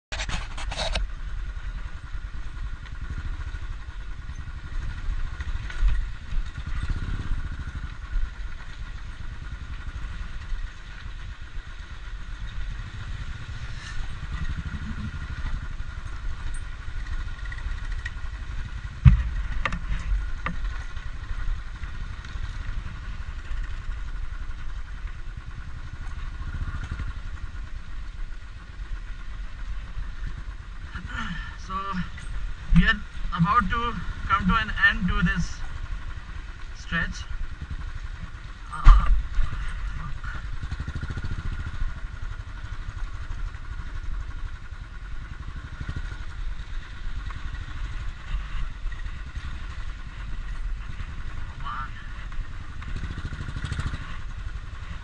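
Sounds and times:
motorcycle engine running: 0.0 - 55.0
sharp thump: 19.0 - 19.4.

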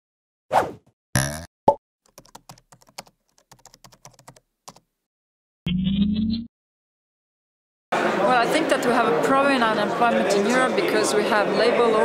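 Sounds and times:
keyboard typing clicks: 2.1 - 4.8.

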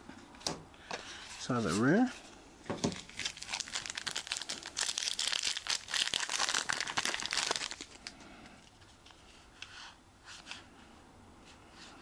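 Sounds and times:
foil wrapper crinkling: 2.8 - 8.1.

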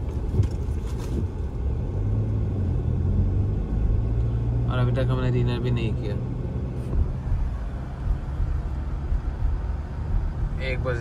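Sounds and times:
car driving low rumble: 0.0 - 11.0.

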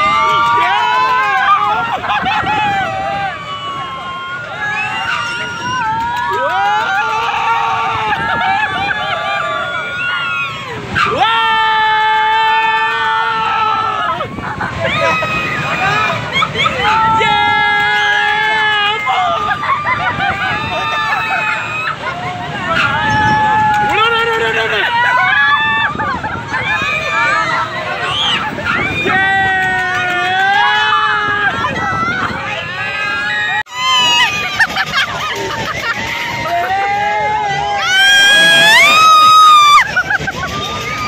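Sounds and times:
crowd noise: 0.0 - 41.0
people screaming on a ride: 0.0 - 41.0.

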